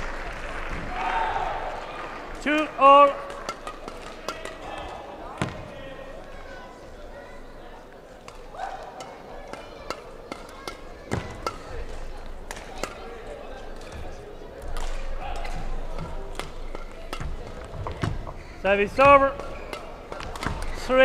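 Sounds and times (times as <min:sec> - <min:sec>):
murmur of voices: 0:00.0 - 0:21.0
rackets striking shuttlecock: 0:02.5 - 0:05.7, 0:08.2 - 0:21.0.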